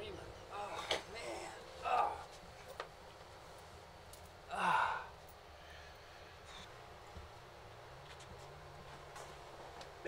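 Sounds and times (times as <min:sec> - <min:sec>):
man sighing: 0:04.5 - 0:05.2.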